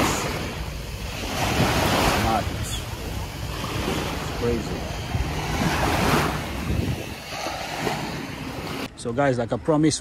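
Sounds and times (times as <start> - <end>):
surf on beach: 0.0 - 8.9
wind buffeting microphone: 0.0 - 8.9.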